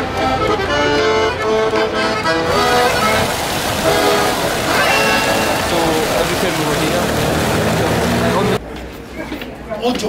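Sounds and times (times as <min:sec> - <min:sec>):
accordion music: 0:00.0 - 0:08.6
traffic: 0:00.0 - 0:09.0
passers-by voices: 0:04.6 - 0:09.8.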